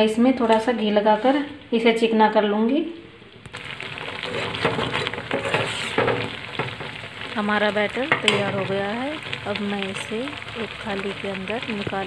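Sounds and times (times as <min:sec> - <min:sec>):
boiling mixture sizzling: 0:03.3 - 0:12.0
metal spoon scraping pan: 0:04.2 - 0:06.8.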